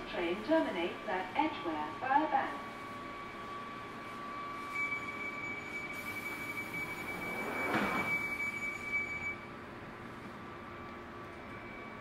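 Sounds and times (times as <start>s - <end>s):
door-closing warning tone: 4.6s - 9.5s
train doors sliding closed: 6.3s - 8.5s.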